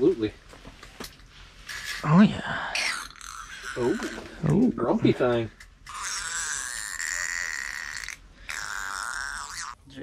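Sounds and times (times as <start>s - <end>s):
fish grunting: 2.6s - 4.4s, 5.9s - 9.8s.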